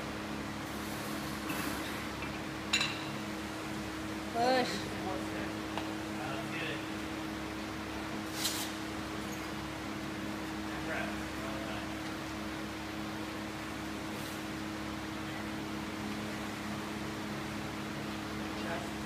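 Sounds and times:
floor fan humming: 0.0s - 19.0s.

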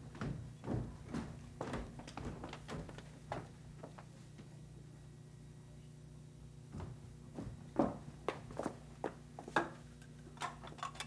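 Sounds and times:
low steady hum: 0.0s - 11.0s
footsteps on hard floor: 0.1s - 4.1s, 6.7s - 9.6s.

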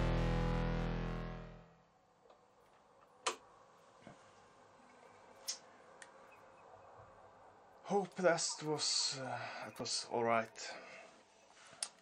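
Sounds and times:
ambient electric guitar drone: 0.0s - 1.8s.

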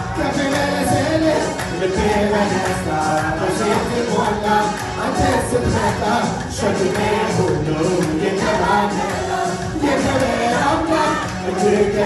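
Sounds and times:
women's choir singing gospel: 0.0s - 12.0s
hands clapping: 0.4s - 6.0s, 7.9s - 8.4s, 11.2s - 11.5s.

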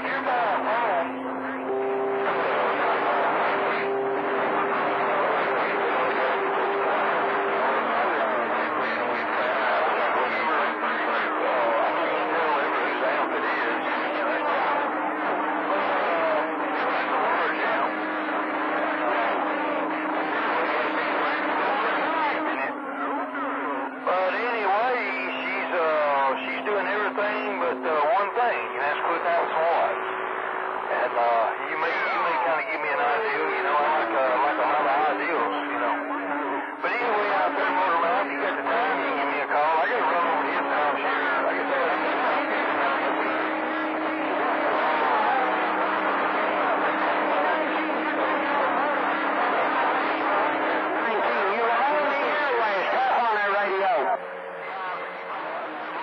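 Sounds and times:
steady whistling radio tones: 0.0s - 56.0s
voices over radio speaker: 0.0s - 56.0s.

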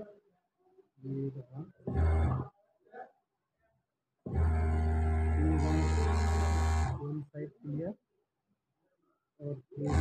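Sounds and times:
sewing machine running: 4.4s - 7.1s.

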